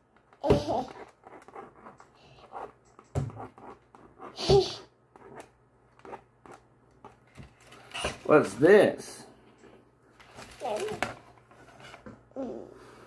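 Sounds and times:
stylus scratching drawing board: 0.6s - 6.6s.

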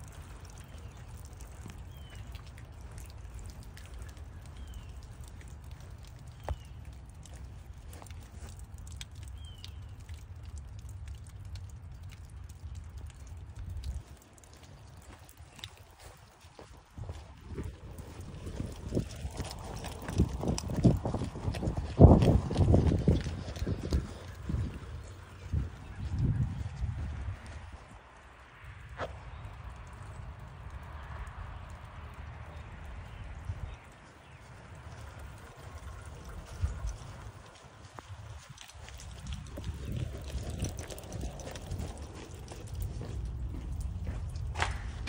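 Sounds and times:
soft footsteps outdoors: 0.0s - 45.0s
footsteps on grass: 14.5s - 27.7s.

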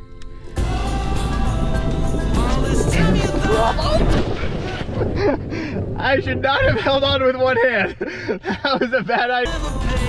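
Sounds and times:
wind buffeting microphone: 1.6s - 8.4s.

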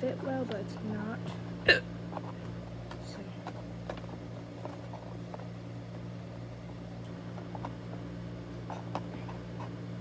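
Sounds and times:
appliance humming: 0.0s - 10.0s.

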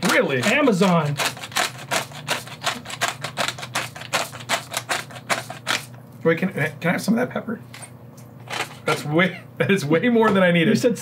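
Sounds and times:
pepper mill grinding clicks: 0.0s - 5.9s.

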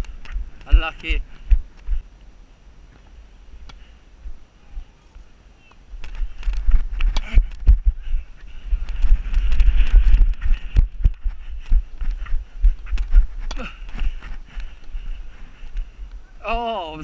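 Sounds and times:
wind on microphone: 0.0s - 2.1s, 5.8s - 16.6s
low rumble of camera movement: 0.0s - 16.7s.

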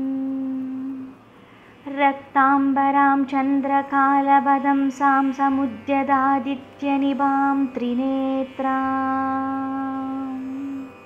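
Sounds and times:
woman chanting a long note: 0.0s - 1.2s, 1.8s - 11.0s.

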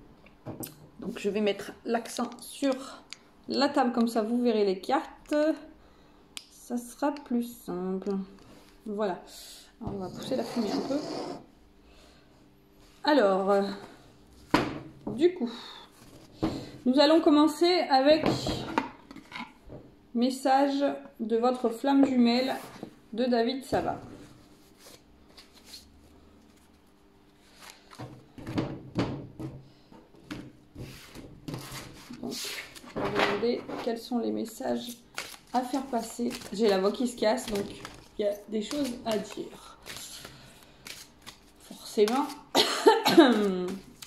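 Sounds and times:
cards being shuffled: 24.8s - 26.8s, 34.8s - 42.5s.

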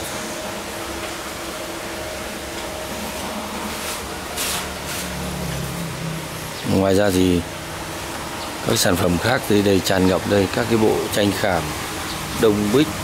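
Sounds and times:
mechanical hum: 0.0s - 13.0s.

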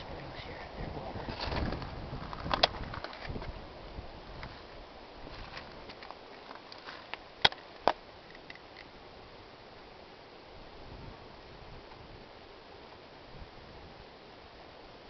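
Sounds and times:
footsteps on rocks and gravel: 1.2s - 3.6s, 4.3s - 8.6s.

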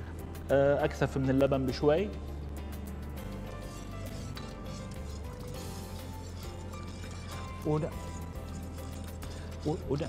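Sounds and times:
faint background music: 0.0s - 10.0s
low steady hum: 0.0s - 10.0s
utensil scraping in a pot: 3.2s - 10.0s.

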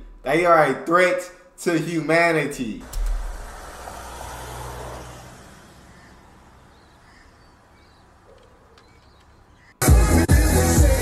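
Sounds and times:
car passing: 2.8s - 9.8s
faint bird calls: 5.7s - 9.8s
loud pop music: 9.8s - 11.0s.

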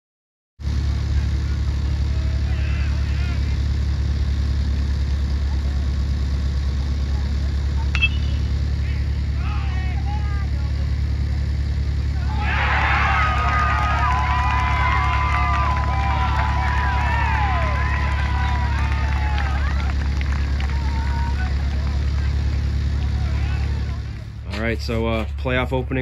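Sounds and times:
steady low rumble: 0.6s - 26.0s
crowd cheering and yelling: 1.0s - 4.2s, 7.8s - 11.3s, 12.0s - 25.5s
people shouting: 1.1s - 3.8s, 7.9s - 11.0s, 12.0s - 24.3s
metal bat hitting ball: 7.9s - 8.7s.

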